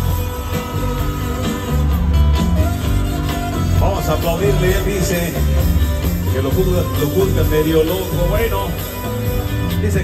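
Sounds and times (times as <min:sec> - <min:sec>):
bass: 0:00.0 - 0:10.0
drums: 0:00.0 - 0:10.0
guitar: 0:00.0 - 0:10.0.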